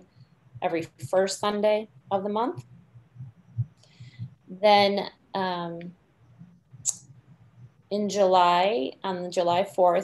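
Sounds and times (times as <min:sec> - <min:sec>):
faint background noise: 0:00.0 - 0:10.0
person speaking: 0:00.6 - 0:05.9, 0:07.9 - 0:10.0.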